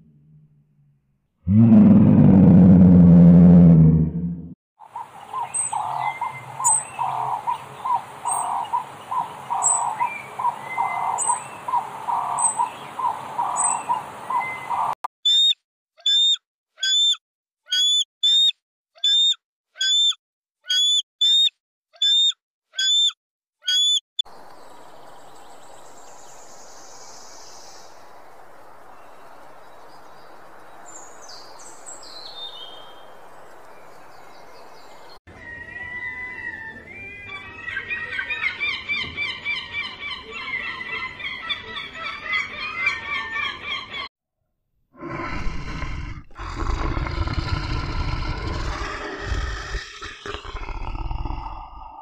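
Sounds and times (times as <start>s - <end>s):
lion growling: 1.4s - 4.6s, 45.0s - 52.0s
bird chirping: 4.9s - 44.1s.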